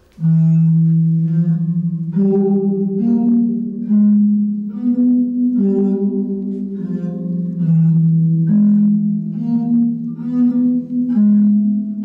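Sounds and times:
steel rods ringing low metallic note: 0:00.0 - 0:12.0.

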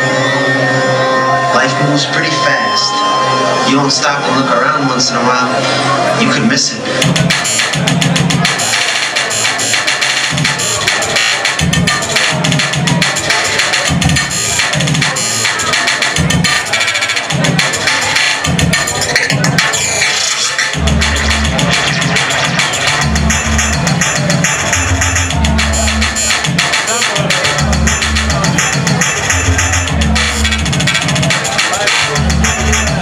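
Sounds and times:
deep heavy bass line: 0:00.0 - 0:33.0
electronic music over club speakers: 0:00.0 - 0:33.0
fast clicking percussion: 0:07.0 - 0:33.0.

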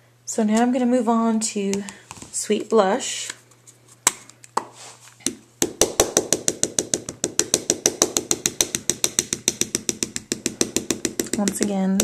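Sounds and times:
stamp tapping on ink pad: 0:05.7 - 0:12.0.

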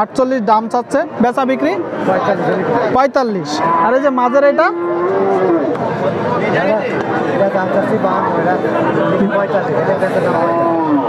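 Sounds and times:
people chattering: 0:00.0 - 0:11.0
cow mooing: 0:03.4 - 0:05.8, 0:10.2 - 0:11.0.

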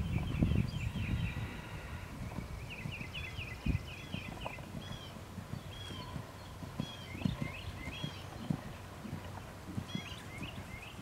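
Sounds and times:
horse hoofbeats on sand: 0:02.1 - 0:11.0.

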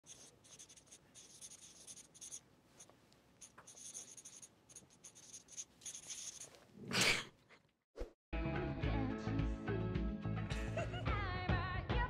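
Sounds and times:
marker scratching on paper: 0:00.0 - 0:06.6.

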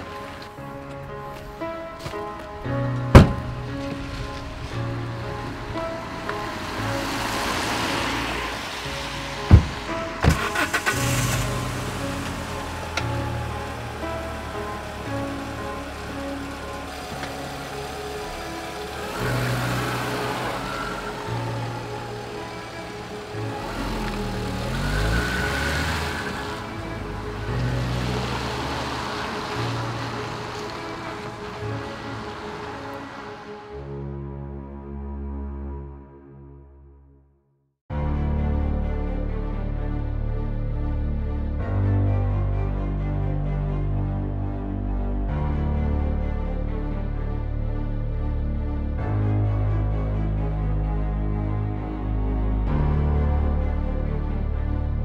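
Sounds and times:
car engine and tyres on wet road: 0:00.0 - 0:34.0
slow film score: 0:00.0 - 0:55.0
car tailgate slamming: 0:03.0 - 0:03.6, 0:09.5 - 0:11.5
sharp knock: 0:03.2 - 0:03.5.

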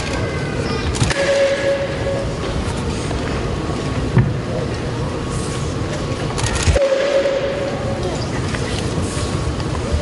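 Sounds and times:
arena crowd murmur: 0:00.0 - 0:10.0
steady held tone: 0:01.1 - 0:02.4, 0:06.8 - 0:08.2.

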